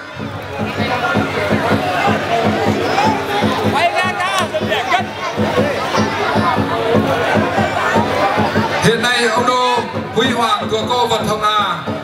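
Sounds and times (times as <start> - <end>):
crowd chatter: 0.0 - 12.0
drum beaten fast: 0.0 - 12.0.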